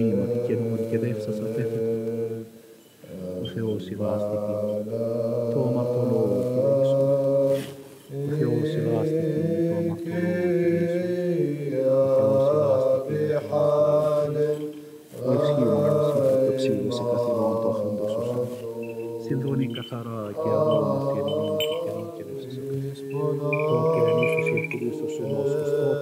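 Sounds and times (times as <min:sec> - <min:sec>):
low voices chanting: 0:00.0 - 0:26.0.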